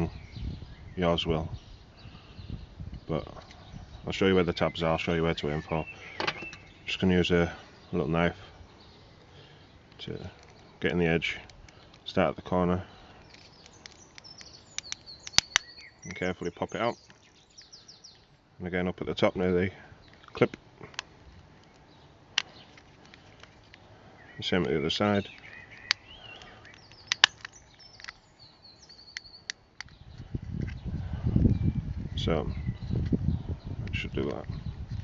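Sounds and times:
birds chirping: 0.0s - 35.0s
sharp plastic clicks: 13.1s - 16.3s, 20.0s - 23.8s, 24.5s - 30.8s
knife prying plastic case clicks: 25.3s - 28.2s.

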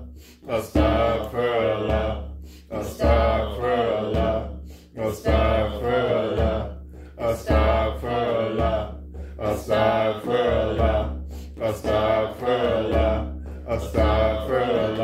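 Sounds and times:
group of voices chanting: 0.5s - 4.5s, 5.2s - 15.0s
frame drum thumps: 5.3s - 15.0s.

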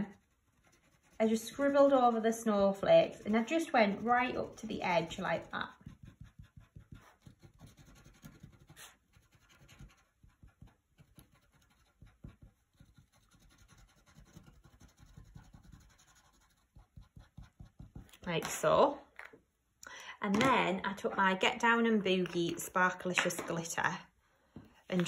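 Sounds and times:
pen scratching on card: 3.1s - 18.2s.

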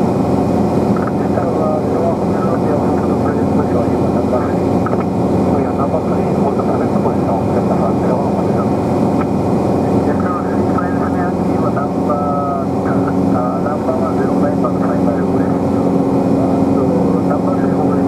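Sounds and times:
light aircraft engine drone: 0.0s - 18.0s.

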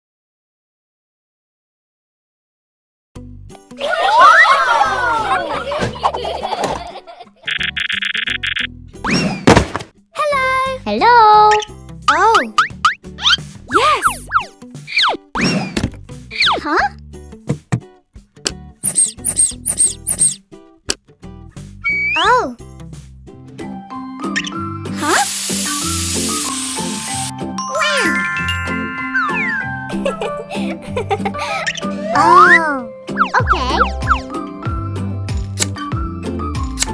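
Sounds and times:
playful background music: 3.2s - 36.9s
children cheering: 3.8s - 6.6s
sliding cartoon tones: 18.8s - 20.4s, 21.8s - 22.4s, 27.8s - 30.0s
spray bottle hiss: 18.8s - 20.4s, 25.0s - 27.3s
chimes: 27.6s - 30.5s.

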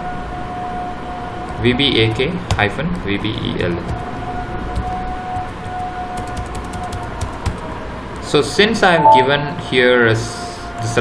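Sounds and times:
steady background hum: 0.0s - 11.0s
computer keyboard keys clicking: 4.8s - 7.6s
faint held tone: 8.8s - 9.8s.

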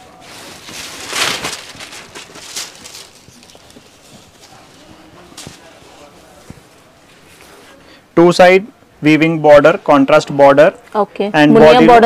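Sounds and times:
fabric rustling and swishing: 0.0s - 7.8s.

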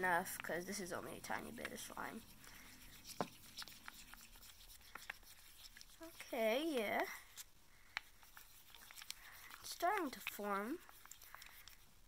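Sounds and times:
stick scraping in plastic cup: 0.8s - 6.8s.

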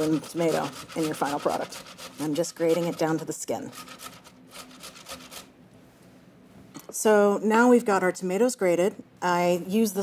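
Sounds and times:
tomato grating on grater: 0.0s - 5.5s.

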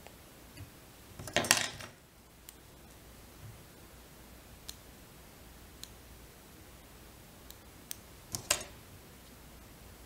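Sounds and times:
small metal tools clattering: 1.3s - 2.0s.

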